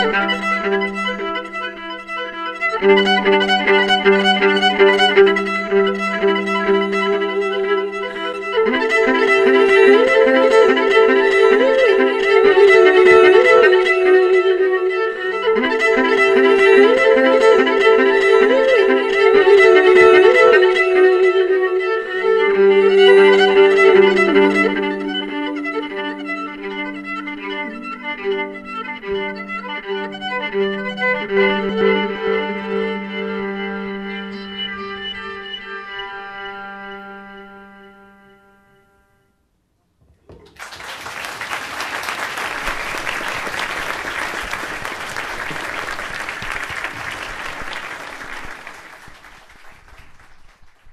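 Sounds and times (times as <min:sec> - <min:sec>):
violin playing sliding melody: 0:00.0 - 0:39.2, 0:42.1 - 0:50.0.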